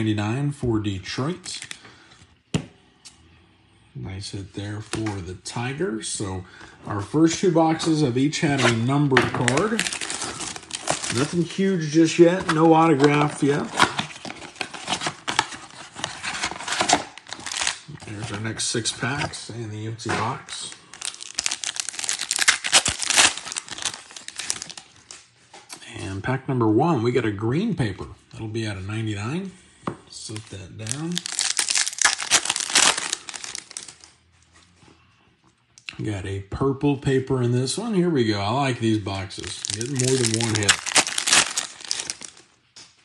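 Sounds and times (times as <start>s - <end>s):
foil wrapper crinkling and tearing: 9.3s - 17.9s, 20.7s - 25.2s, 30.3s - 34.1s, 39.4s - 42.5s.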